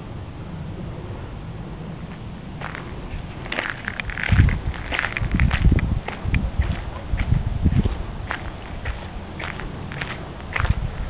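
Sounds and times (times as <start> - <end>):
wind rumbling on microphone: 0.0 - 11.0
crackling footsteps: 2.1 - 11.0.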